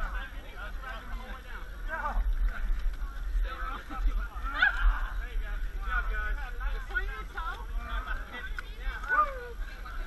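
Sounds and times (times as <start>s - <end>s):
steady low rumble: 0.0s - 10.0s
people calling out and shouting: 8.8s - 9.8s.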